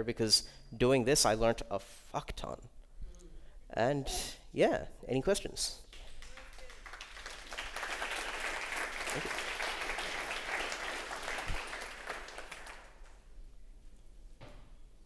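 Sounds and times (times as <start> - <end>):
audience applauding: 5.9 - 13.2.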